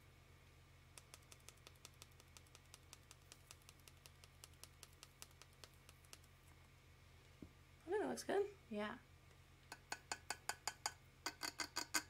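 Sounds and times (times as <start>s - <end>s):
glitter jar tapping clicks: 9.7s - 12.0s.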